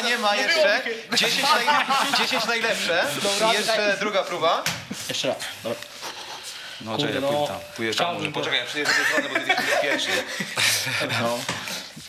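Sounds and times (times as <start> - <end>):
people talking: 0.0 - 5.9, 6.8 - 11.7.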